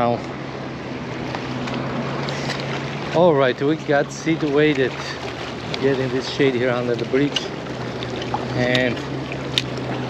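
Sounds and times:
low steady hum: 0.0 - 10.0
water at a seawall: 0.0 - 10.0
wind: 0.0 - 10.0.

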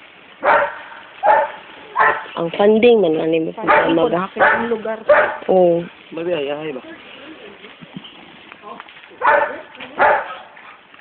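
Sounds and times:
dog barking: 0.4 - 2.4, 3.6 - 5.5, 9.2 - 10.8.

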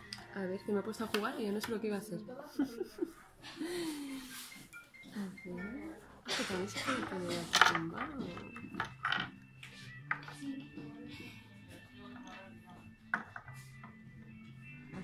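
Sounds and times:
soft background music: 0.0 - 15.0
small plastic figures clicking on table: 7.4 - 9.4.

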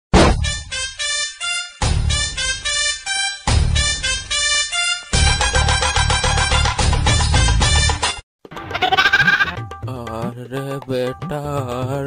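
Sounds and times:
music: 0.3 - 12.0
wavering animal bleat: 8.6 - 9.6.

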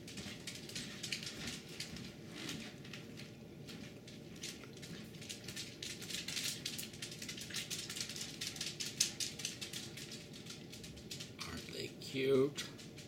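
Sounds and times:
faint ticks pattering: 0.0 - 13.0.

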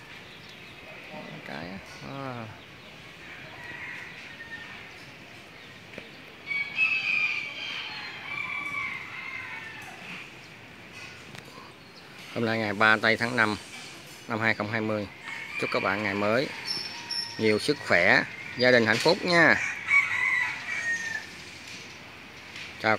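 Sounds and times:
rooster crowing: 3.2 - 5.0, 6.4 - 10.3, 15.1 - 21.4.

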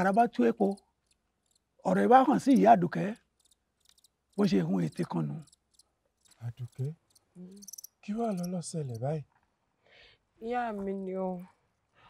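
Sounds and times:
man speaking: 0.0 - 0.8, 1.8 - 3.2, 4.4 - 5.4, 6.4 - 7.0, 8.0 - 9.2.

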